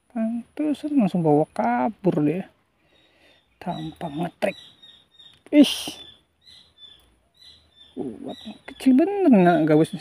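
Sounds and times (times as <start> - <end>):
faint bird chirps: 0.1 - 10.0.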